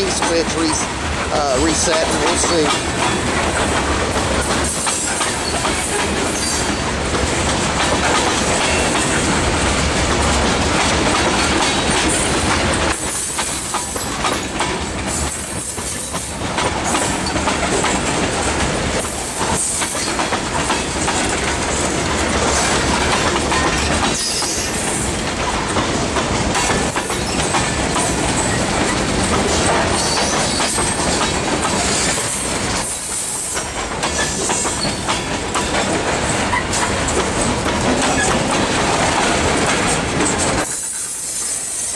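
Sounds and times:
clattering over rail joints: 0:00.0 - 0:41.1
train wheels rumbling on rail: 0:00.0 - 0:41.9.

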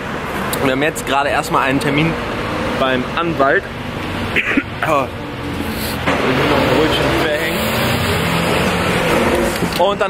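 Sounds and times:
road noise: 0:00.0 - 0:10.0.

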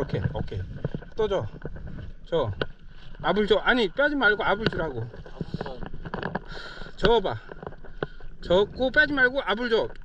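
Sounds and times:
paddle stroke through water: 0:00.0 - 0:10.0
water splashing and lapping: 0:00.0 - 0:10.0.

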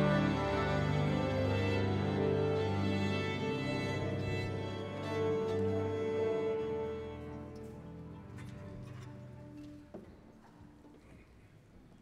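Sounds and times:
orchestra holding sustained chord: 0:00.0 - 0:07.6.

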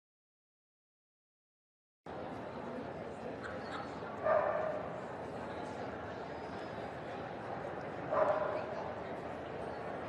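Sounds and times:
arena crowd murmur: 0:02.1 - 0:10.0.

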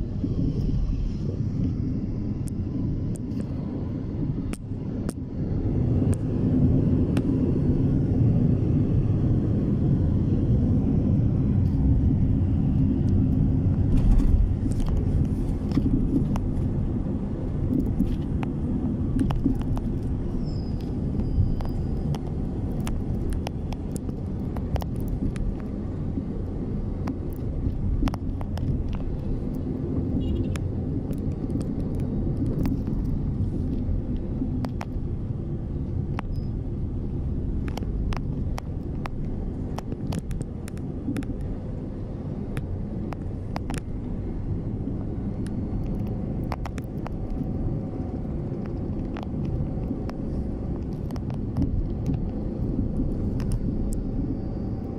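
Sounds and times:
moving vehicle rumble: 0:00.0 - 0:54.9.

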